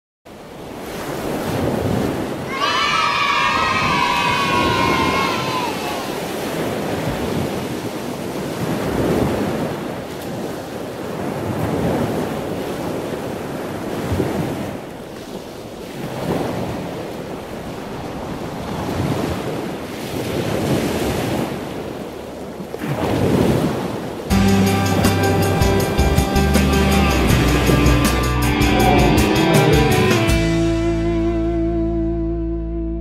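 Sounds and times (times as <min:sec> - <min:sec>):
waves breaking on beach: 0:00.3 - 0:30.6
wind on microphone: 0:00.8 - 0:30.3.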